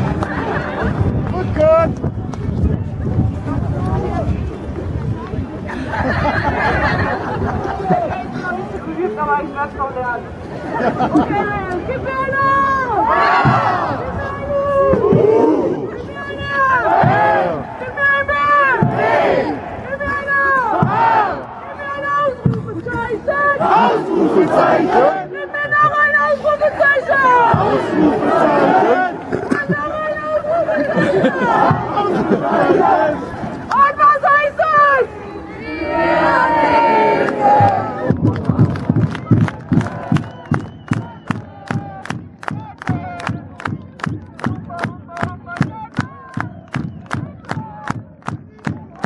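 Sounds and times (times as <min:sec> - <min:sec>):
crowd shouting back: 0:12.0 - 0:38.2
steady drumbeat: 0:13.0 - 0:14.1, 0:14.8 - 0:15.6, 0:16.8 - 0:19.9, 0:20.6 - 0:21.5, 0:27.3 - 0:28.8, 0:31.5 - 0:32.1, 0:37.5 - 0:49.0.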